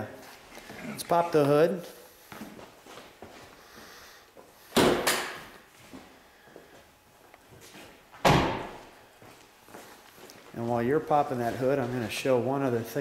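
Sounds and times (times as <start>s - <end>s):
loud thud: 8.2s - 8.8s.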